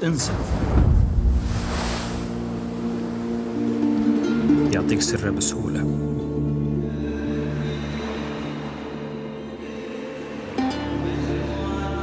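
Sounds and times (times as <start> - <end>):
sea wave crashing: 0.0 - 4.7
surf hissing wash: 0.0 - 4.7.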